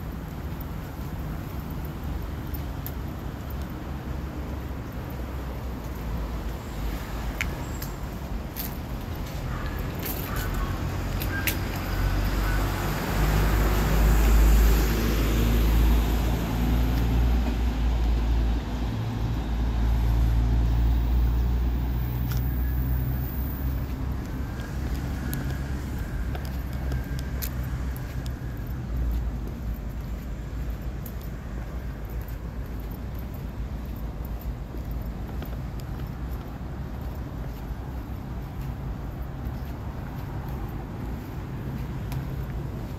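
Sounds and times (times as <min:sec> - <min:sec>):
vehicles passing on street: 0:00.0 - 0:42.9.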